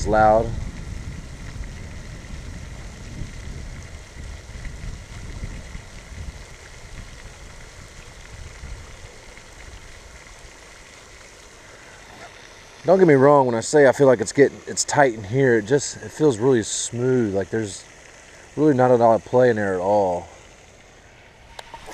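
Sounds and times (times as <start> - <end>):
fountain spray splashing: 0.0 - 21.9.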